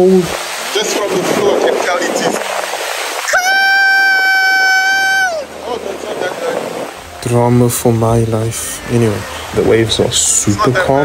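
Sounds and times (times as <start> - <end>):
small waves washing over sand: 0.0 - 7.1
person screaming: 3.3 - 5.5.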